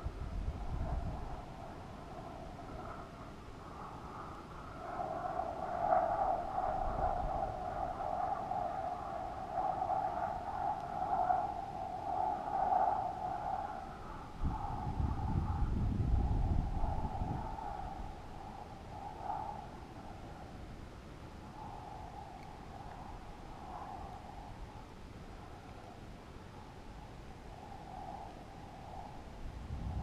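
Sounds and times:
low wind buffeting microphone: 0.0 - 30.0
wind whistling hollow tone: 0.0 - 30.0.

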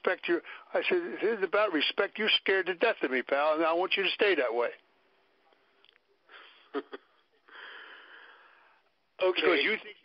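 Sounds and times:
man laughing breathily: 6.3 - 7.2.

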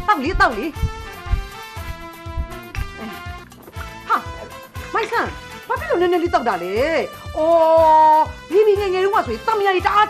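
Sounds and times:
film music: 0.0 - 10.0.

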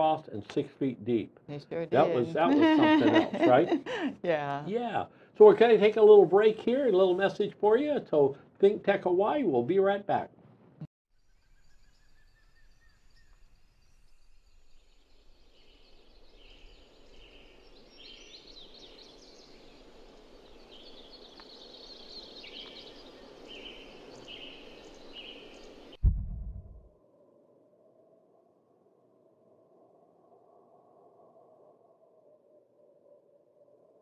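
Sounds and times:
birds chirping: 11.6 - 26.0
deep boom: 26.0 - 26.9.

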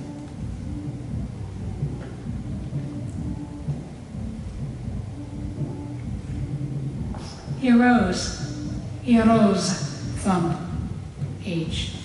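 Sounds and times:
faint hum: 0.0 - 12.0
low background rumble: 0.0 - 12.0.

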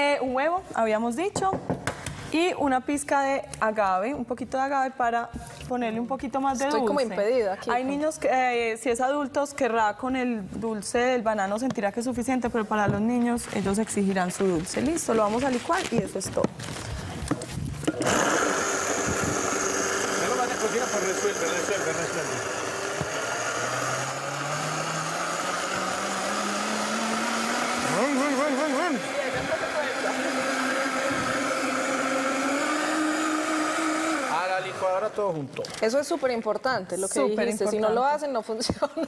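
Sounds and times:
blender running: 17.8 - 35.3.

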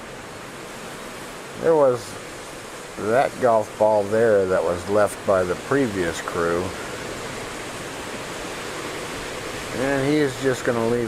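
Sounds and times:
strong storm wind: 0.0 - 11.0.

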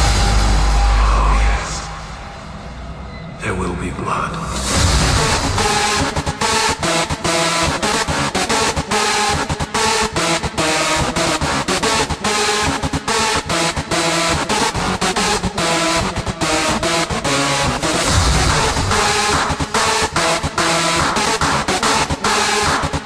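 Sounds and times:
electronic dance music: 4.4 - 23.0.

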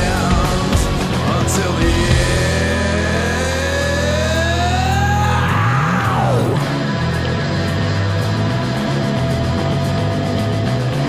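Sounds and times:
steady low chord: 0.0 - 11.0
distorted electric guitar bending note: 1.9 - 10.8.

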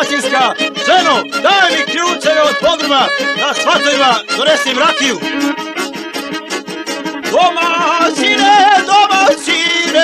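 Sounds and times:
string accompaniment: 0.0 - 10.0
folk singing with wide vibrato: 7.3 - 10.0.

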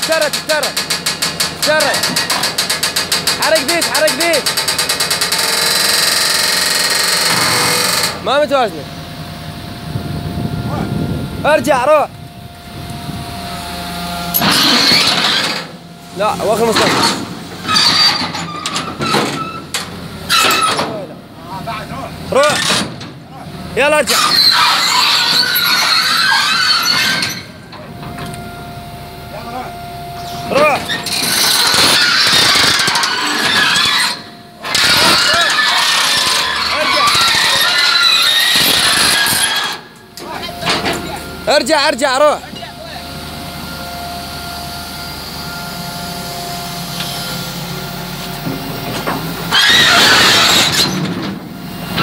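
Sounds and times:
metal tracks scraping and clattering: 0.0 - 8.6, 14.3 - 21.7, 22.3 - 28.4, 30.2 - 42.8, 46.9 - 52.0
excavator whine and hum: 0.0 - 52.0.

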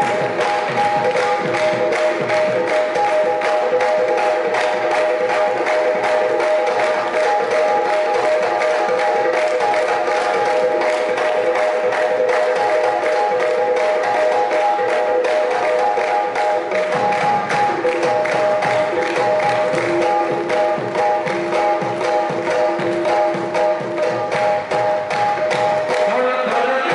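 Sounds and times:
hand clapping: 0.0 - 26.9
hand drum: 0.0 - 26.9.

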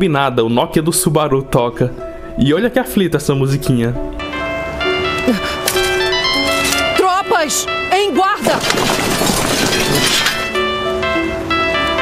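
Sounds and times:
phone ringtone melody: 4.2 - 8.5, 10.0 - 12.0.

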